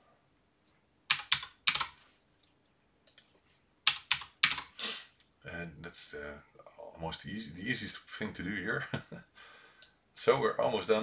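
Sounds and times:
computer keyboard typing: 1.1s - 2.0s, 3.1s - 4.7s.

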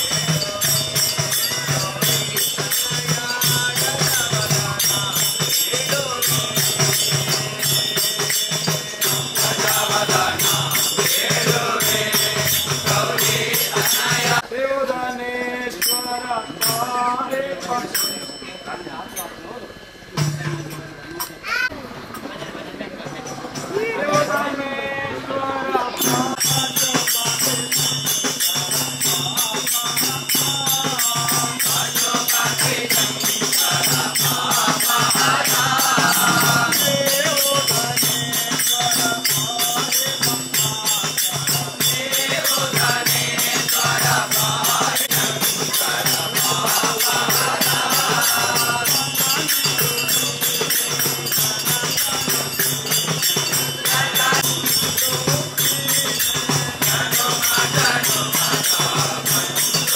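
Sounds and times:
frame drums beating: 0.0s - 14.4s, 26.0s - 59.9s
group singing: 0.0s - 18.1s, 23.8s - 59.9s
men chanting a devotional song: 0.0s - 21.0s, 23.1s - 59.9s
hand cymbals: 0.0s - 22.2s, 25.9s - 59.9s.

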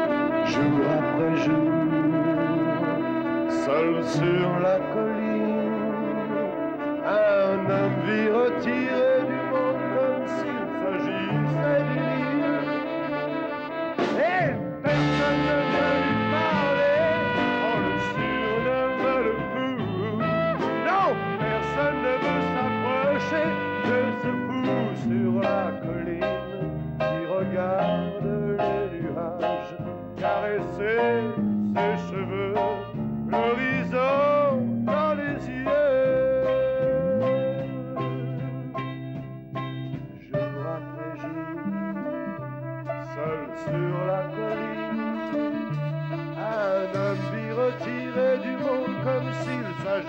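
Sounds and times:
man singing: 0.0s - 39.0s, 40.2s - 50.0s
brass section playing chords: 0.0s - 50.0s
instrumental backing with bass: 0.0s - 50.0s
live band music: 0.0s - 50.0s.

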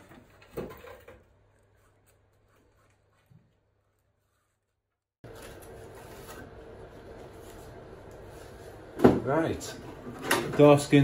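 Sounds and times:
faint workshop hum: 0.0s - 11.0s.

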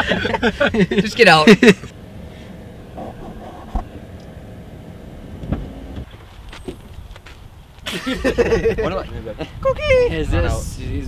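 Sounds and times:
car cabin rumble: 0.0s - 7.6s.

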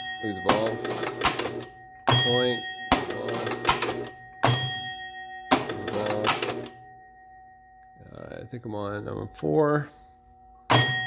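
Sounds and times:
score bell ringing: 0.0s - 11.0s
pinball relays clattering: 0.3s - 6.8s.

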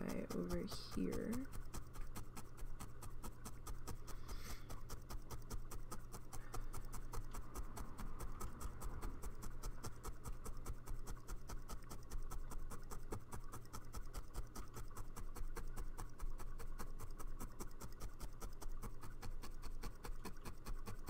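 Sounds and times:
felting needle poking wool: 0.0s - 21.0s
steady low hum: 0.0s - 21.0s.

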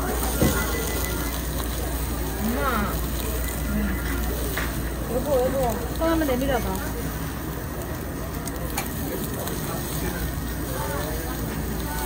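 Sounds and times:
voices chattering: 0.0s - 12.0s
metal tongs clicking on grill: 7.8s - 9.6s.

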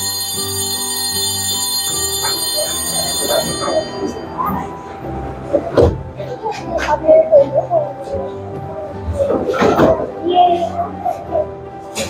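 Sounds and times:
shrill electric bell ringing: 0.0s - 5.2s
background music: 0.0s - 12.0s.

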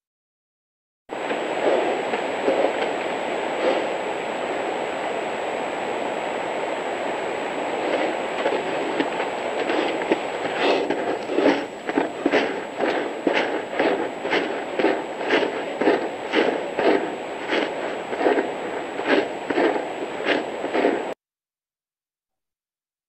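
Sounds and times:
steady rushing noise: 1.1s - 21.2s.

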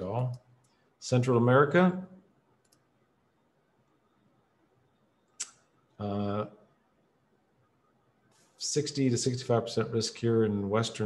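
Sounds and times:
faint computer mouse click: 2.6s - 2.9s.

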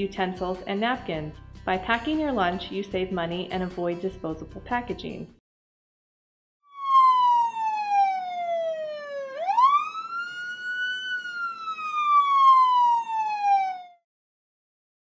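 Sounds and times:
police siren wailing: 6.7s - 14.0s.

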